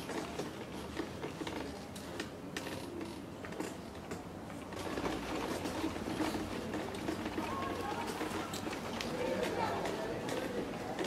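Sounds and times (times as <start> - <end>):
wheelchair rolling on cobblestones: 0.0 - 11.0.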